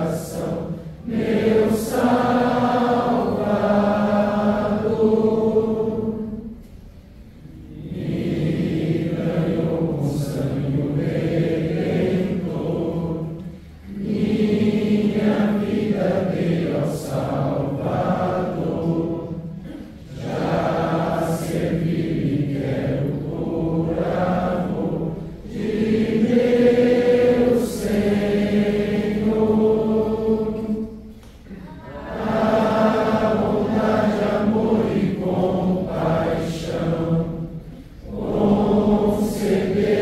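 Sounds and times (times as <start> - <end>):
congregation singing a hymn: 0.0 - 6.7, 7.5 - 40.0.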